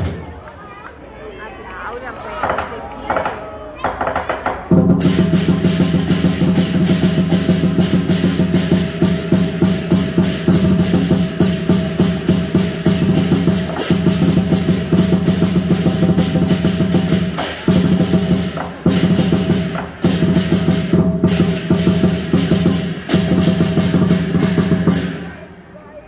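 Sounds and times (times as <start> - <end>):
big drum beaten fast: 4.7 - 25.4
cymbals clashing: 4.7 - 25.4.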